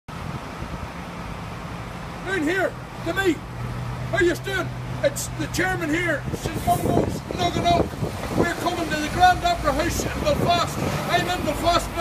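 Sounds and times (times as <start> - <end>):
city street traffic hum: 0.1 - 12.0.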